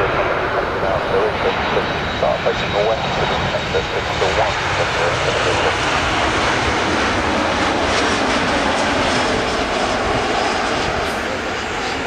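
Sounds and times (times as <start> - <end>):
jet airliner passing overhead: 0.0 - 12.0.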